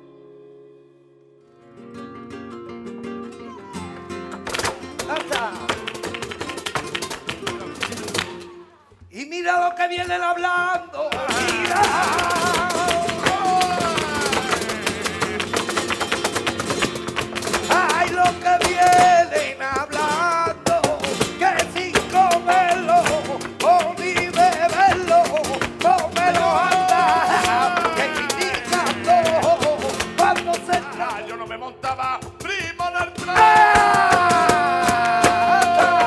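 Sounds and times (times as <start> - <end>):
flamenco guitars: 0.0 - 36.0
rhythmic hand-clapping: 3.9 - 8.6, 11.1 - 31.2, 31.9 - 36.0
person singing: 7.6 - 16.2, 17.5 - 36.0.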